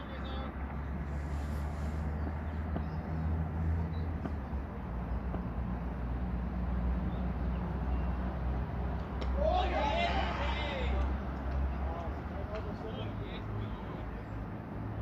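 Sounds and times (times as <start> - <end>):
player shouting: 9.3 - 11.2.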